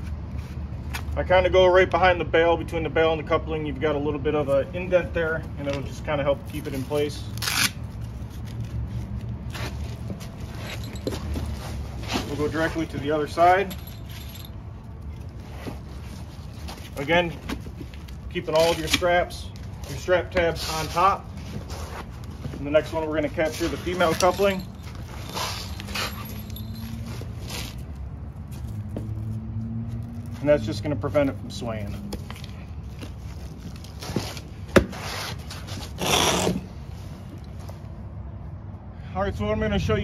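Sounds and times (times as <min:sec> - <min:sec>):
hook-and-loop strap rasp: 0:06.5 - 0:30.5, 0:31.9 - 0:37.6.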